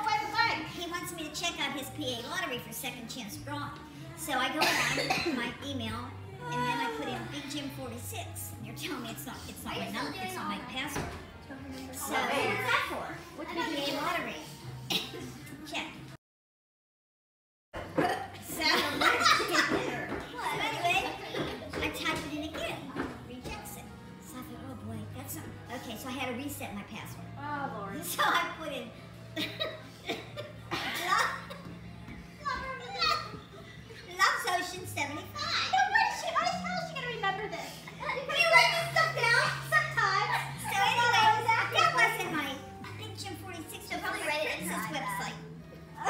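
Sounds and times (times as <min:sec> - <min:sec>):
people talking and laughing: 0:00.0 - 0:16.2, 0:17.8 - 0:46.0
women laughing: 0:18.0 - 0:20.0, 0:29.4 - 0:31.8
women talking: 0:18.0 - 0:25.8.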